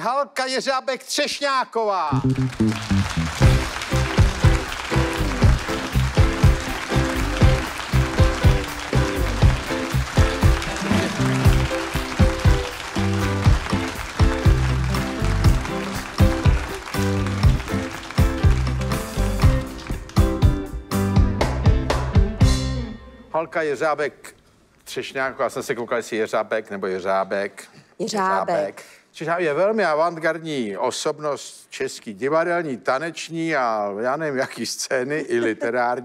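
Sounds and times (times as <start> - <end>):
live band playing upbeat tune: 2.1 - 23.0.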